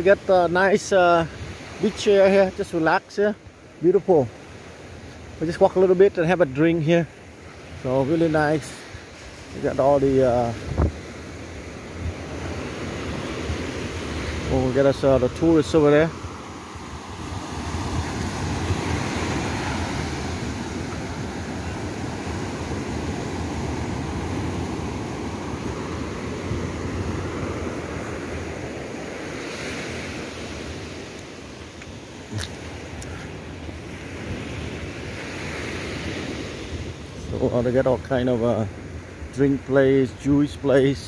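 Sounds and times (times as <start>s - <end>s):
surf washing onto beach: 0.0s - 41.0s
wind buffeting microphone: 7.7s - 29.3s.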